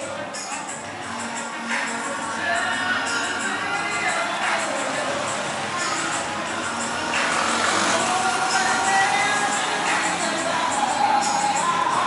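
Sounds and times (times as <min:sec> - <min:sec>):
music from bars: 0:00.0 - 0:12.0
traffic noise: 0:00.0 - 0:12.0
motorbike passing: 0:04.3 - 0:11.0.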